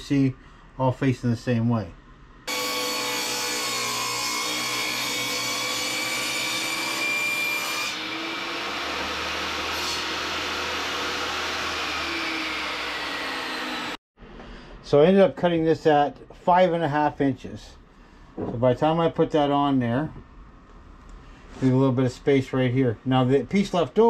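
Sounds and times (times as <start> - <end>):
table saw cutting wood: 2.5 - 14.0.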